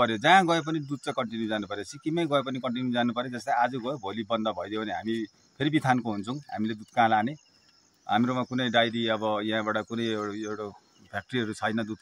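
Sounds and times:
man speaking: 0.0s - 7.4s, 8.1s - 12.0s
crickets chirring: 0.0s - 12.0s.

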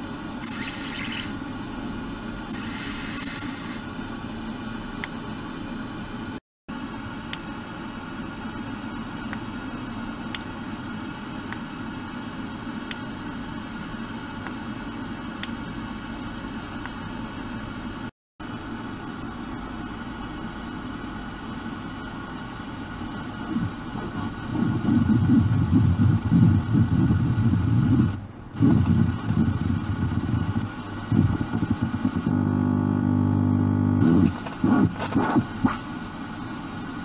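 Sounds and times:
sonic device buzzing: 0.4s - 1.4s, 23.1s - 37.0s.

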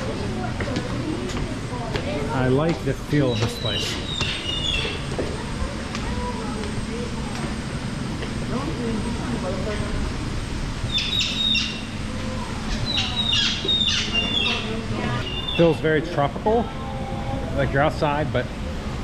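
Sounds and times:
faint voices: 0.0s - 19.0s
steady low hum: 0.0s - 19.0s
small birds chirping: 3.1s - 5.2s, 10.8s - 16.0s.

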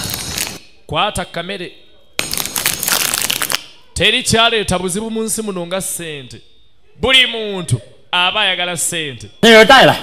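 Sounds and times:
food wrapper crinkling: 2.2s - 3.6s.

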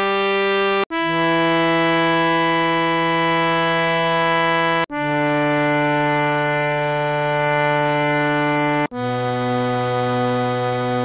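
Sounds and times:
harmonium holding long notes: 0.0s - 11.0s.

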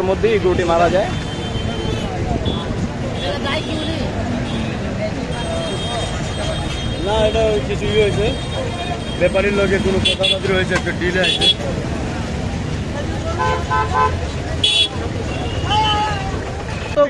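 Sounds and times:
crowd talking: 0.0s - 17.0s
vehicle horns honking: 0.9s - 11.7s, 13.3s - 17.0s.

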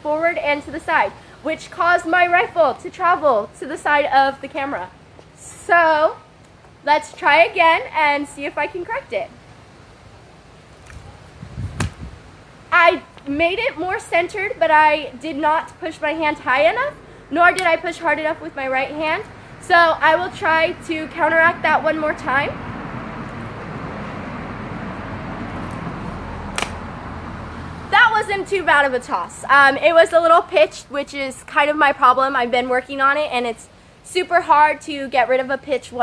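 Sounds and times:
wind rumble on microphone: 10.8s - 12.3s
rifle smacking into hand: 26.6s - 26.8s.

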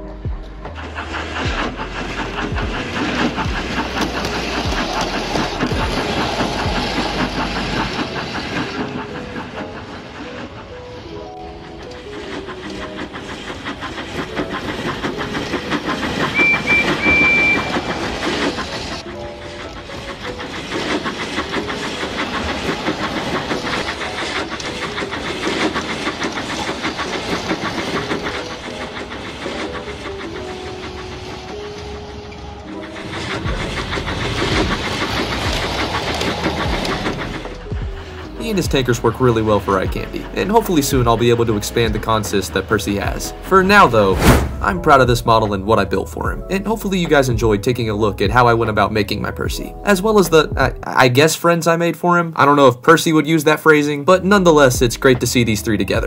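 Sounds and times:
background music melody: 0.0s - 56.0s
model train running on track: 0.0s - 56.0s
short high whistle: 16.4s - 17.7s.

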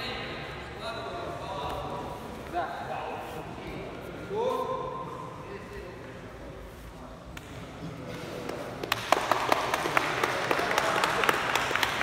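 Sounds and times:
audience clapping: 8.4s - 12.0s.

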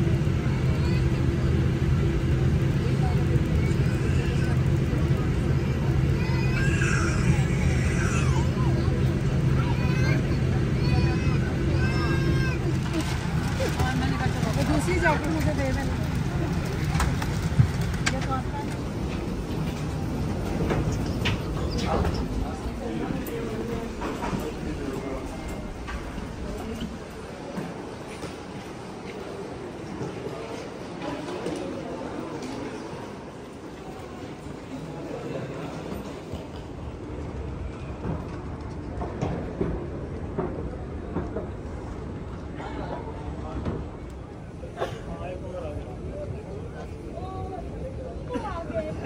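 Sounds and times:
low cabin rumble: 0.0s - 28.0s
murmured passenger voices: 0.0s - 49.0s
suitcases rolling over tiled floor: 12.6s - 28.4s.

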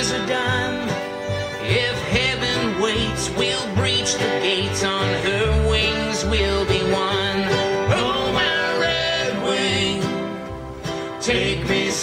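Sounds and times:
person singing: 0.0s - 10.4s
acoustic guitar: 0.0s - 12.0s
mandolin: 0.0s - 12.0s
upright bass: 0.0s - 12.0s.

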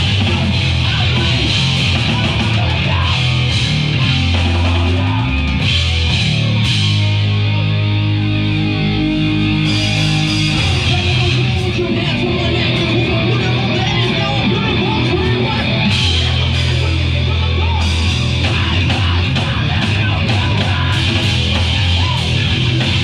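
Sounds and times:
punk band playing live: 0.0s - 23.0s.

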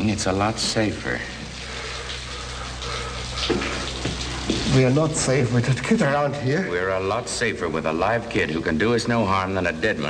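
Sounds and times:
low steady hum: 0.0s - 10.0s
water rushing from a valve: 0.0s - 10.0s.

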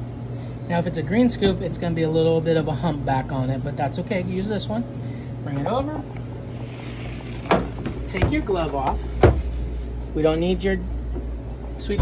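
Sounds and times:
low hum of kitchen equipment: 0.0s - 12.0s.

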